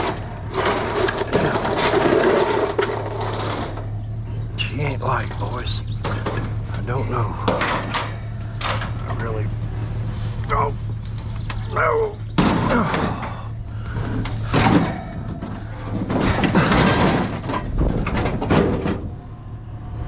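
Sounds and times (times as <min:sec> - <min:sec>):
sheet metal scraping and knocking: 0:00.0 - 0:04.1, 0:12.3 - 0:19.2
man grunting with effort: 0:12.6 - 0:13.6.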